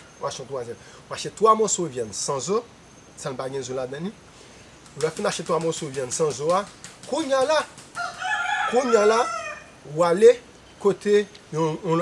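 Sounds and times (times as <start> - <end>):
rooster crowing: 7.9 - 9.8.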